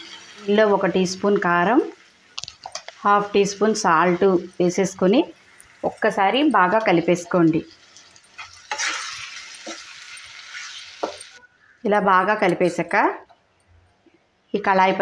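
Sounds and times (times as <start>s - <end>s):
vegetables sizzling in a frying pan: 0.0s - 11.4s.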